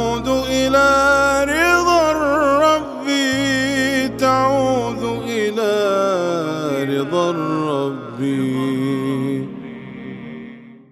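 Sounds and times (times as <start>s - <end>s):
a cappella singing voices: 0.0s - 10.9s.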